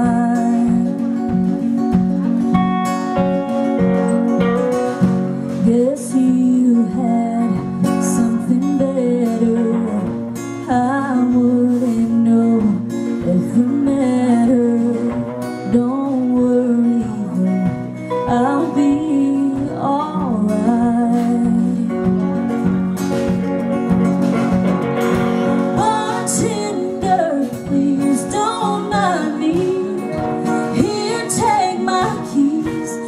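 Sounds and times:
woman singing into microphone: 0.0s - 2.2s, 5.0s - 22.5s, 25.6s - 33.0s
guitar accompaniment: 0.0s - 33.0s.

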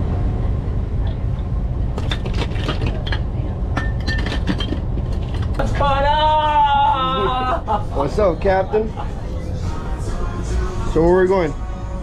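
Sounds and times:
steady low rumble: 0.0s - 12.0s
glass bottles clinking: 2.0s - 5.7s.

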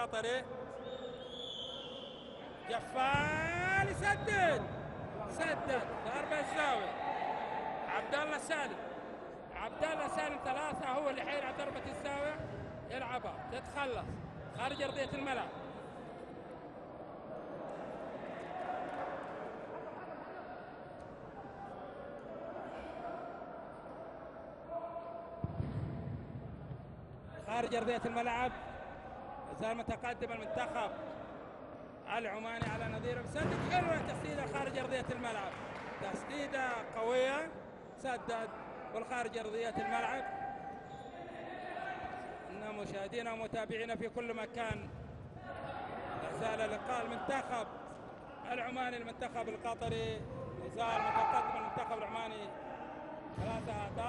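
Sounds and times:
distant voices and shouts echoing: 0.0s - 54.0s
sports hall background noise: 0.0s - 54.0s
man's voice: 2.6s - 4.6s, 5.2s - 6.9s.

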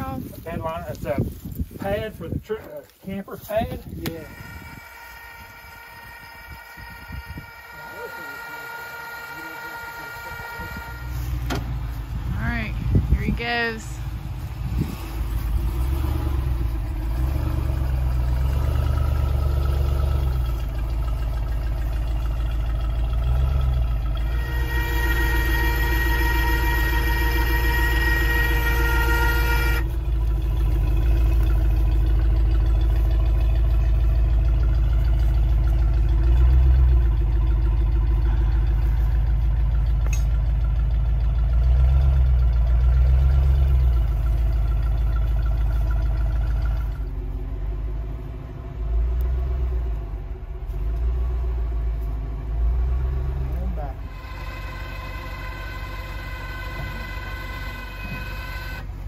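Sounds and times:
truck engine running: 0.0s - 59.0s
high-pitched tone: 4.1s - 11.3s, 54.0s - 58.9s.

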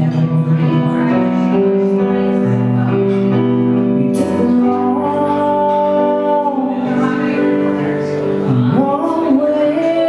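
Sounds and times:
instrumental accompaniment: 0.0s - 10.0s.

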